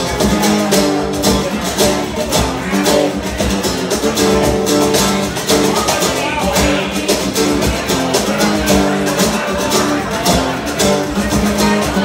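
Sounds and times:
acoustic guitar strumming: 0:00.0 - 0:12.0
hand percussion: 0:00.0 - 0:12.0.

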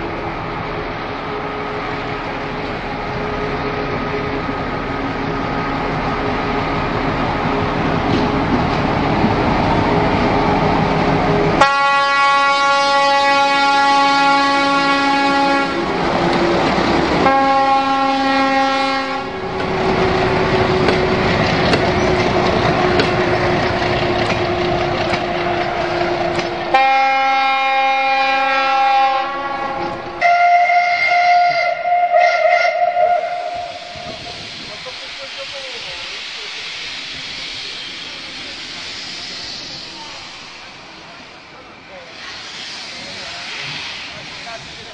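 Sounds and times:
diesel locomotive running: 0:00.0 - 0:44.9
locomotive horn: 0:11.6 - 0:15.9, 0:17.2 - 0:19.4, 0:26.7 - 0:34.1.

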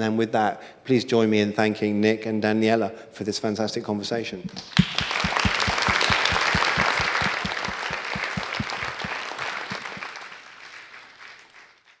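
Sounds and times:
audience applause: 0:04.6 - 0:12.0
close person clapping: 0:04.6 - 0:12.0.

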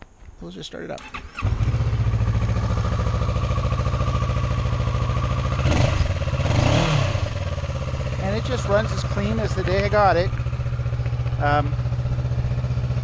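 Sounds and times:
motorcycle engine starting and idling: 0:00.9 - 0:13.0.

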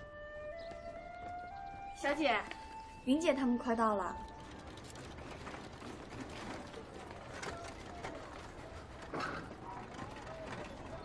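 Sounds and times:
rickshaw wheels clicking and rattling: 0:00.0 - 0:11.0.

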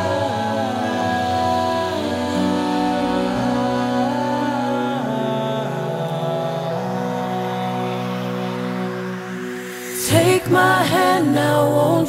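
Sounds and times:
vocal ensemble holding wordless chords: 0:00.0 - 0:12.0.

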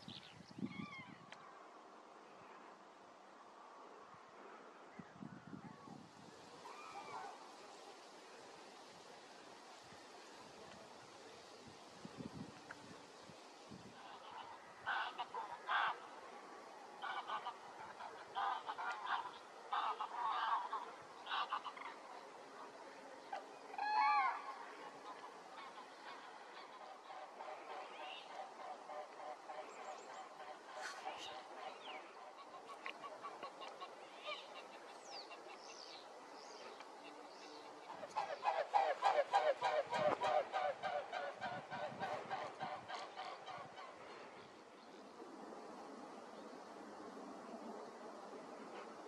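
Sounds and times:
geese honking: 0:14.0 - 0:16.3, 0:17.0 - 0:22.0, 0:23.3 - 0:35.6, 0:37.0 - 0:44.0.

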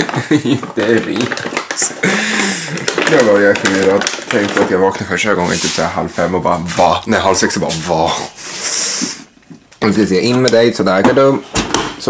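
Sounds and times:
man's wordless voice: 0:03.0 - 0:08.4.

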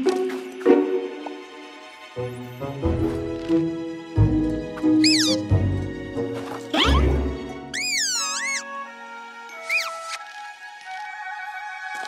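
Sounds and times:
background music: 0:00.0 - 0:12.0
squeaky cartoon character vocalizations: 0:05.0 - 0:05.4, 0:06.8 - 0:07.1, 0:07.7 - 0:08.7, 0:09.6 - 0:10.2.

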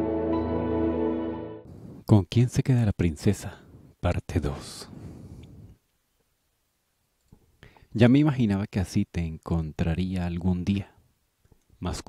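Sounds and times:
narrator speaking: 0:02.0 - 0:05.0, 0:11.8 - 0:12.0
faint clicks: 0:07.2 - 0:07.9.

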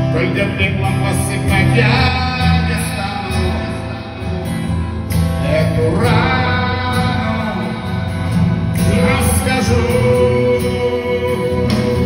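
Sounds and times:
electric guitar: 0:00.0 - 0:12.0
live band playing: 0:00.0 - 0:12.0.

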